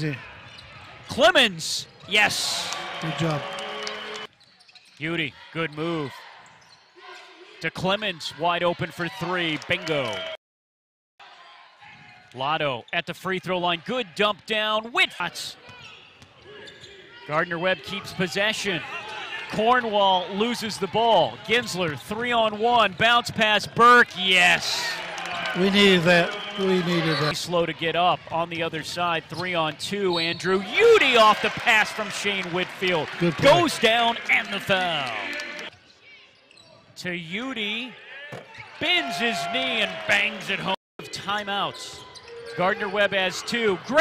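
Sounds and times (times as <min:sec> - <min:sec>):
faint arena background: 0:00.0 - 0:10.4, 0:11.2 - 0:44.0
sports commentator calling: 0:01.1 - 0:04.3, 0:12.4 - 0:15.6, 0:17.3 - 0:35.7, 0:38.8 - 0:44.0
commentator speaking: 0:25.6 - 0:27.6, 0:29.6 - 0:35.6.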